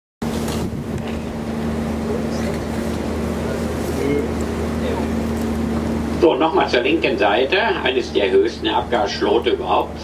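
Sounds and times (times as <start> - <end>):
boat engine humming: 0.2 - 10.0
wind: 0.2 - 10.0.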